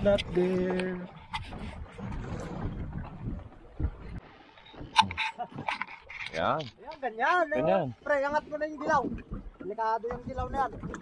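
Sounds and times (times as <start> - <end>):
water noise around boat: 0.0 - 11.0
wind: 0.0 - 11.0.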